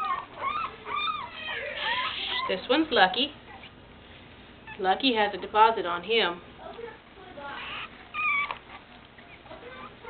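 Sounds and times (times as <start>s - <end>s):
puppy whimpering: 0.0s - 2.6s, 3.5s - 3.8s, 7.4s - 10.0s.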